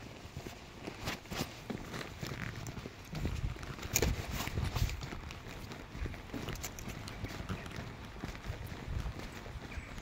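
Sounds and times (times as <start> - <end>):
footsteps on brick paving: 0.0 - 10.0.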